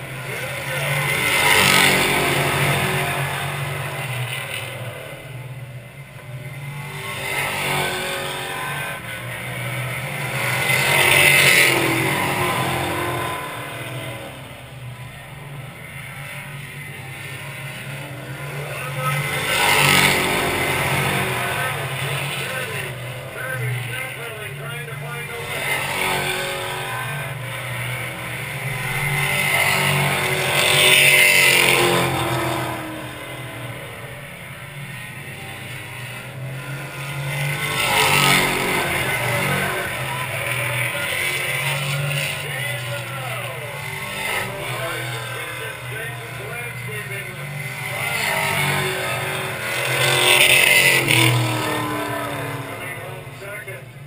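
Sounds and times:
cars passing loudly: 0.0s - 54.0s
racing car engines droning: 0.0s - 54.0s.

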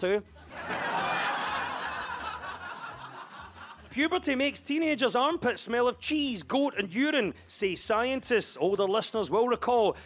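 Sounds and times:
studio audience laughing: 0.3s - 4.0s.

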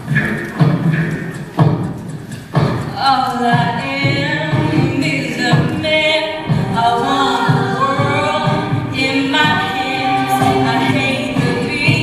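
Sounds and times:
steady low beat: 0.0s - 12.0s
a cappella group singing: 2.9s - 12.0s.

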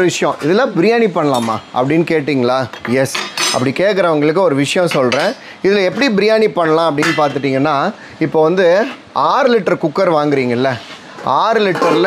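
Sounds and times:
man talking: 0.0s - 12.0s
metal pots and lids clinking: 11.7s - 12.0s.

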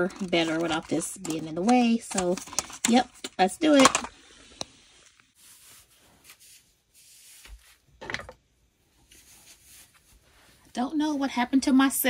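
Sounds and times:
soft rubbing and rustling: 4.9s - 7.9s, 8.9s - 11.9s.

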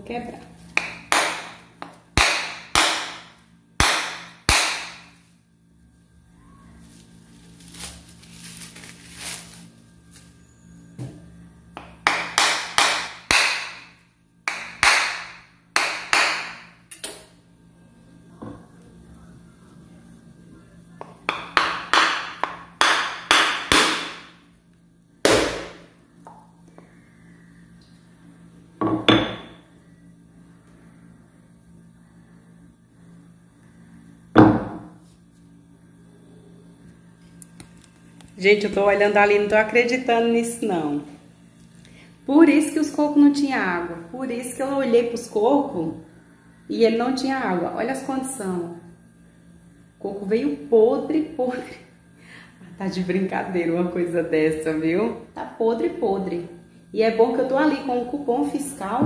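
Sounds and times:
coconut shell being struck: 0.8s - 5.1s, 11.8s - 17.2s, 21.0s - 24.4s, 25.2s - 26.4s.

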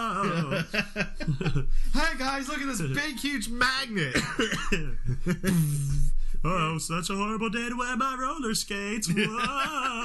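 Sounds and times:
men laughing hard: 0.2s - 1.8s, 4.2s - 5.7s, 9.1s - 10.0s.

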